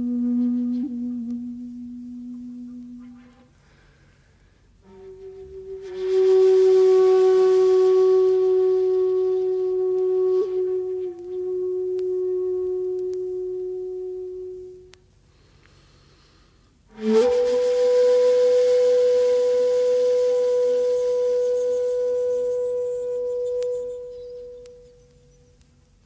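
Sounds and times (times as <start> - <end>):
bamboo flute long notes: 0.0 - 25.7.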